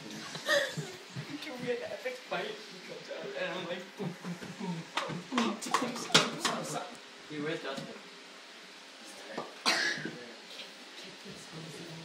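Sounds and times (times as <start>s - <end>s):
person coughing: 9.7s - 10.2s.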